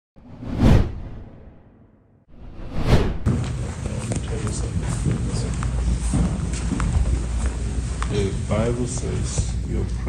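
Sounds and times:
whoosh with deep low end: 0:00.2 - 0:03.3.

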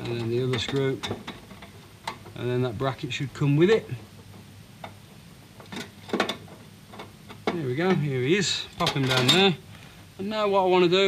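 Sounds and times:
metal bracket clicking and knocking: 0:00.0 - 0:02.4, 0:04.2 - 0:08.1, 0:08.7 - 0:09.5.

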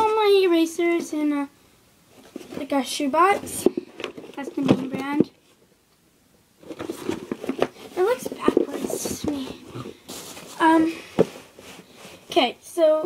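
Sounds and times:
girl making wordless sounds: 0:00.0 - 0:01.6, 0:02.6 - 0:03.7, 0:08.0 - 0:09.8, 0:10.6 - 0:11.2, 0:12.3 - 0:13.0.

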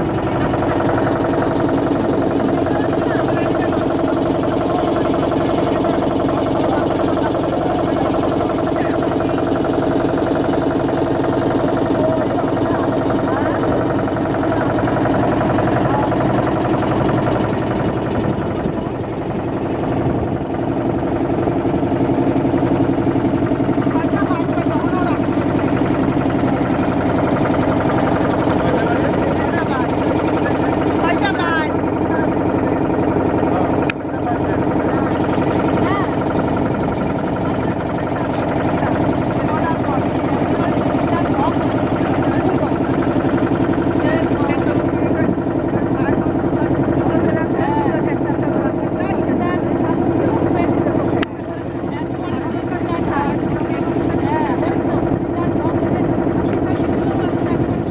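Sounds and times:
motorboat engine running: 0:00.0 - 0:57.9.

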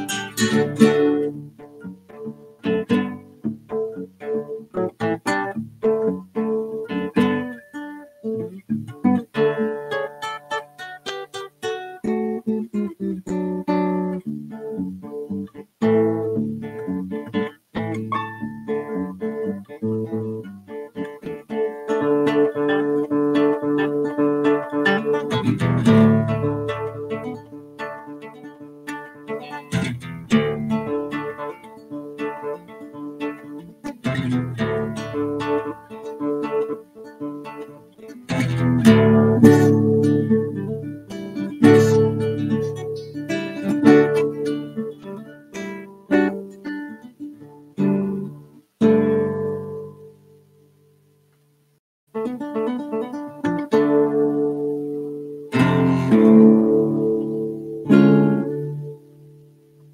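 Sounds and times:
classical guitar fingerstyle: 0:00.0 - 0:59.9.

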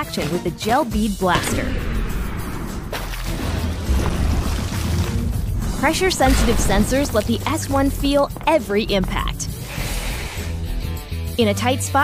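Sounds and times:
music: 0:00.0 - 0:12.0
deep bass swell: 0:03.8 - 0:08.3.

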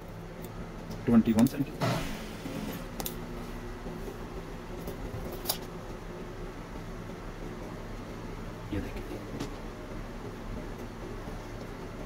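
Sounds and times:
low hum of room equipment: 0:00.0 - 0:12.0.

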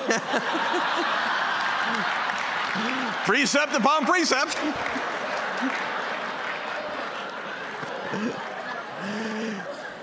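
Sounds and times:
audience applauding: 0:00.0 - 0:09.6.

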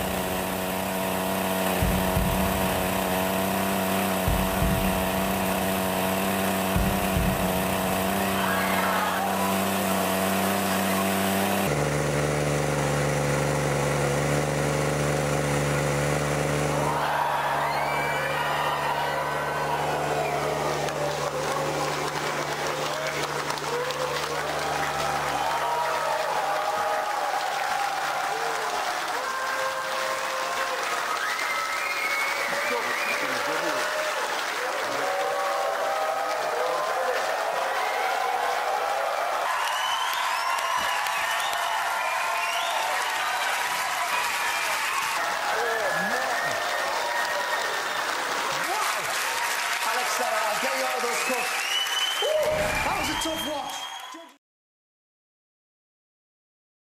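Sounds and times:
steady low drone: 0:00.0 - 0:17.0
studio audience cheering and applauding: 0:00.0 - 0:54.4.

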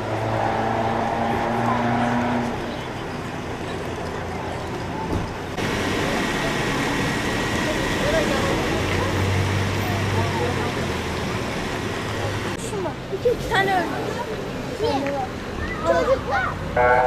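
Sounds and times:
street noise: 0:00.0 - 0:17.0
vehicle engines idling: 0:00.0 - 0:17.0.

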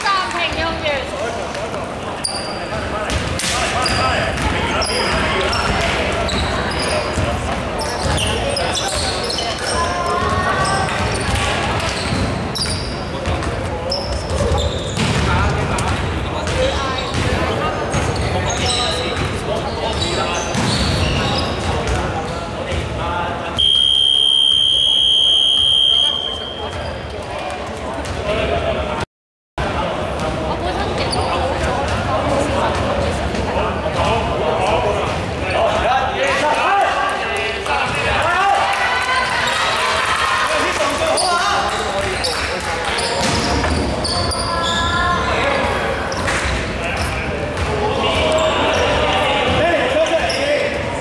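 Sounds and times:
sneakers squeaking: 0:01.6 - 0:22.9, 0:23.6 - 0:27.3, 0:30.2 - 0:32.1, 0:41.1 - 0:45.5, 0:46.1 - 0:50.8
basketball bouncing: 0:13.2 - 0:18.3.

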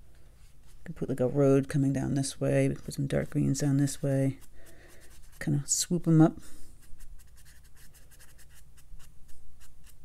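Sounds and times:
paintbrush strokes on paper: 0:02.2 - 0:10.0.

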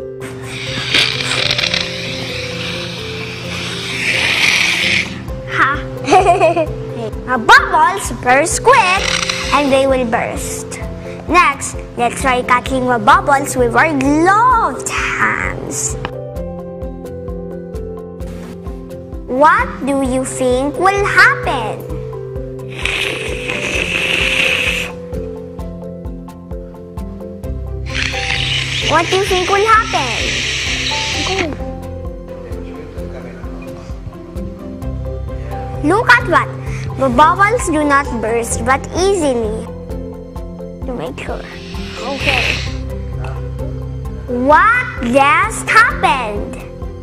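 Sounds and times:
breathy air hiss: 0:00.0 - 0:06.0, 0:08.9 - 0:09.8, 0:22.6 - 0:25.2, 0:27.8 - 0:31.7, 0:41.4 - 0:44.2
background music: 0:00.0 - 0:47.0
child's voice: 0:05.5 - 0:05.9, 0:07.0 - 0:16.0, 0:19.3 - 0:21.8, 0:28.9 - 0:30.5, 0:31.2 - 0:31.6, 0:35.8 - 0:39.7, 0:40.9 - 0:42.7, 0:44.3 - 0:46.7
music with steady beat: 0:16.0 - 0:19.3.

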